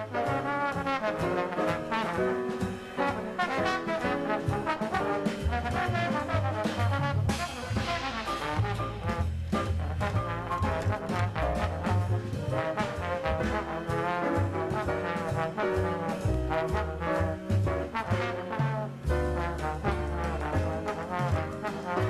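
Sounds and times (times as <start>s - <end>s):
drums: 0.0s - 22.0s
jazz trombone: 0.0s - 22.0s
piano: 0.0s - 22.0s
upright bass: 0.0s - 22.0s.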